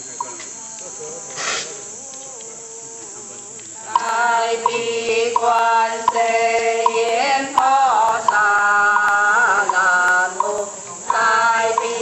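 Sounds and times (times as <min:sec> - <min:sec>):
short hiss: 0:00.0 - 0:02.6
ritual chanting: 0:00.0 - 0:12.0.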